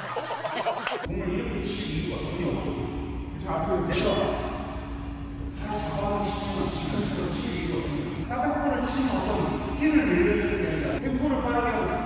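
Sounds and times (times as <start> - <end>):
man speaking in echoing hall: 1.1 - 4.6, 5.4 - 12.0.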